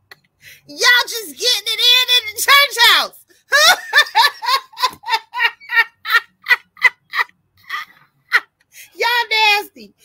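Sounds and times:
woman laughing hard: 0:03.5 - 0:08.5.

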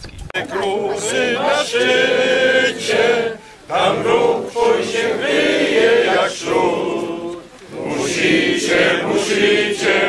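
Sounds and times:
group singing in unison: 0:00.4 - 0:10.0.

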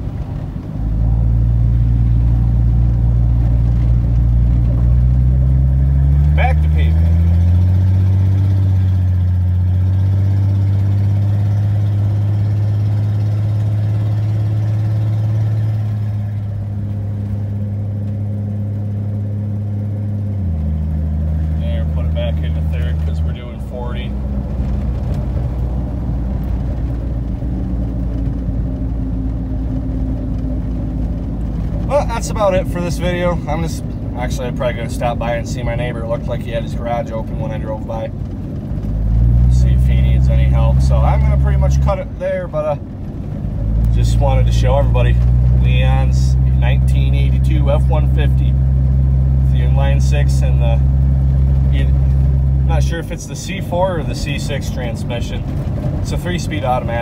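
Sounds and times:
truck engine through broken exhaust: 0:00.0 - 0:57.0.

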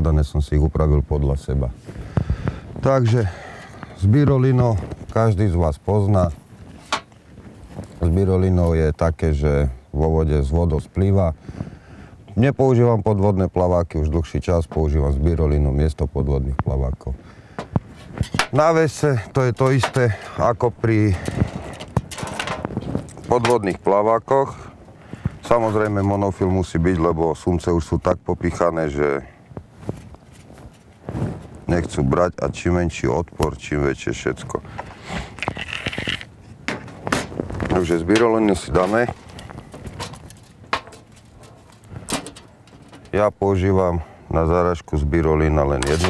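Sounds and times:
fishing tackle rustling: 0:19.6 - 0:23.8, 0:34.6 - 0:43.3.

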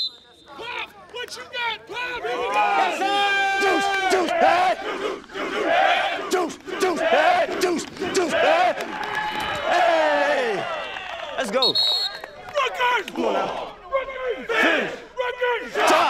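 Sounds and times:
men yelling and hollering: 0:00.6 - 0:11.3, 0:12.5 - 0:16.0.

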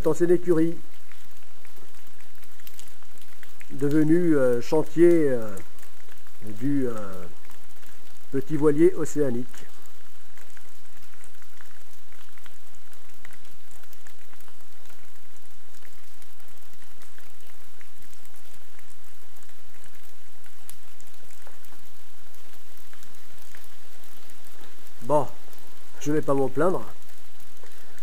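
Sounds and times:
steady rain falling: 0:00.0 - 0:28.0.

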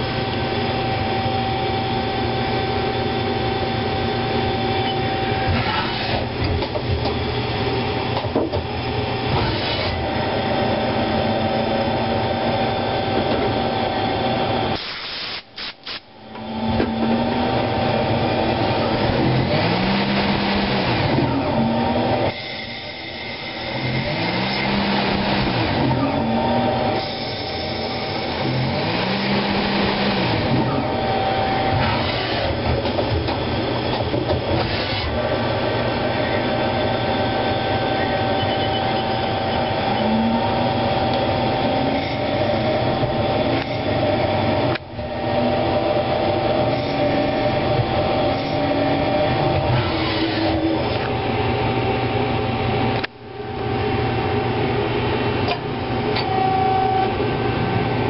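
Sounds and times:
lathe running: 0:00.0 - 0:14.8, 0:16.2 - 0:58.0
machine whine rising and falling: 0:16.2 - 0:53.0.

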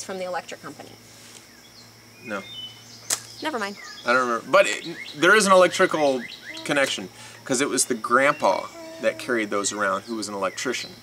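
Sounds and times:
faint high bird chirps: 0:01.6 - 0:11.0.

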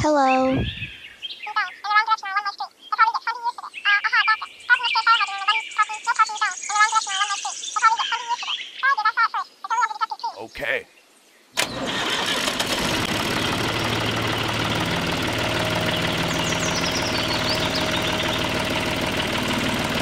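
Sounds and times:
sped-up cartoon voice chattering: 0:01.5 - 0:10.8.

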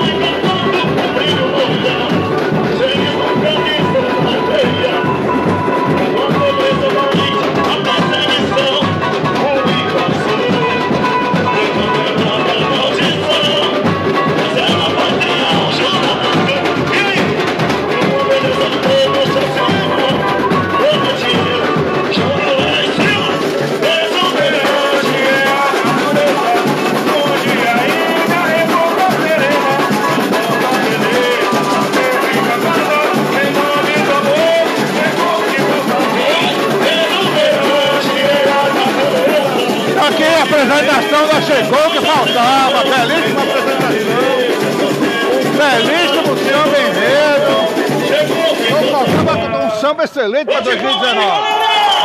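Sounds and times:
samba ensemble with plucked strings: 0:00.0 - 0:50.0
band and percussion beat: 0:00.0 - 0:52.0
man singing over loudspeakers: 0:00.0 - 0:52.0.

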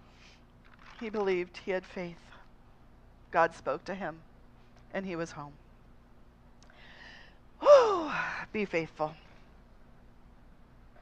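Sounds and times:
woman speaking: 0:01.0 - 0:02.4, 0:03.4 - 0:04.3, 0:04.9 - 0:05.6, 0:07.6 - 0:09.3
woman's in-breath: 0:06.7 - 0:07.4.

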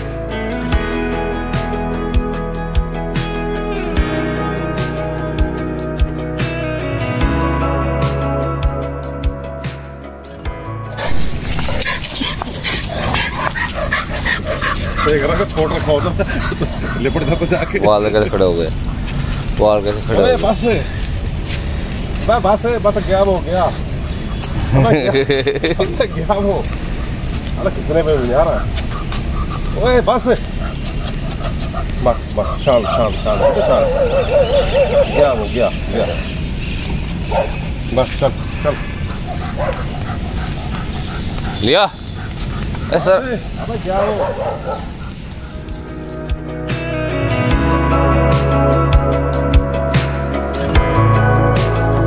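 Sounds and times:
background music: 0:00.0 - 0:20.8, 0:45.4 - 0:52.0
dog barking: 0:11.0 - 0:17.9, 0:28.3 - 0:35.5, 0:37.2 - 0:37.7, 0:38.6 - 0:45.7.

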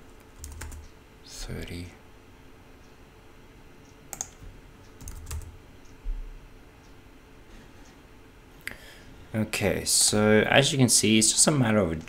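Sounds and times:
keyboard keystrokes: 0:04.1 - 0:04.4, 0:05.0 - 0:05.5.

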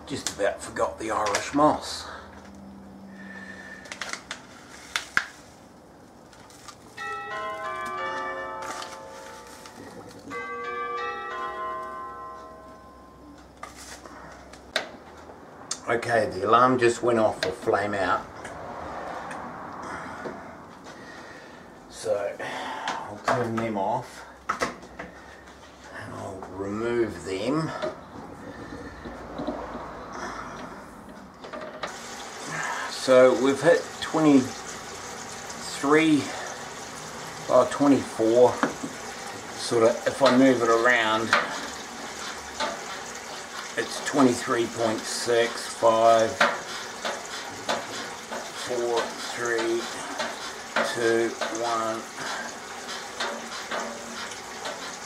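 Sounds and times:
timer alarm chiming bell tones: 0:07.0 - 0:13.6
running water splashing: 0:31.9 - 0:55.0.

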